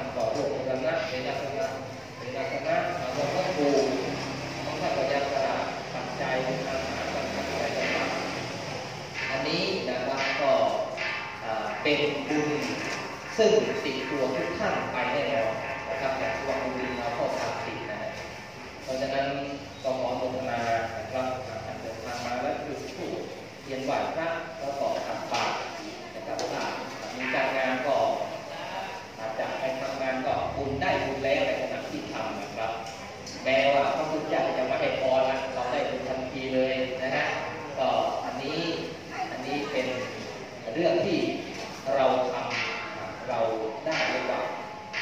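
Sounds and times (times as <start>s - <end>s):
man speaking over loudspeaker: 0.0s - 45.0s.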